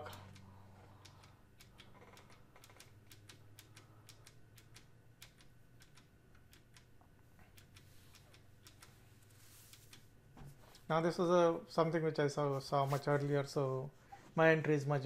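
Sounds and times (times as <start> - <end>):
computer keys clicking: 0.0 - 9.0
low steady hum: 0.0 - 15.0.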